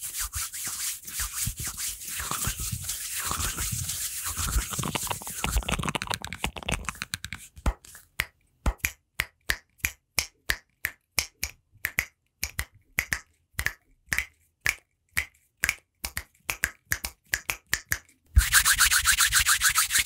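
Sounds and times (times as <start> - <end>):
finger snaps: 7.6 - 18.2.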